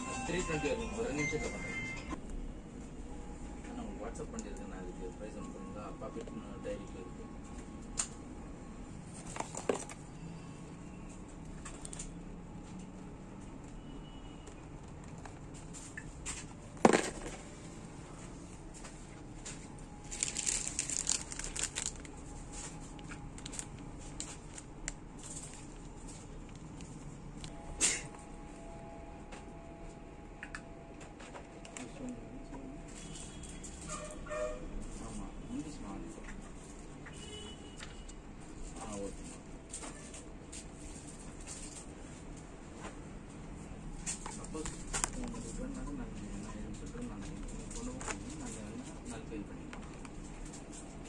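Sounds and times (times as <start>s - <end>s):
plastic packaging crinkling: 9.1s - 10.0s, 19.7s - 27.5s.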